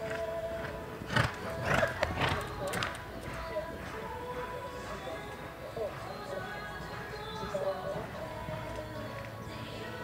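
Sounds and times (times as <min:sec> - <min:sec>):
horse hoofbeats on dirt: 0:00.0 - 0:09.3
background music: 0:00.0 - 0:10.0.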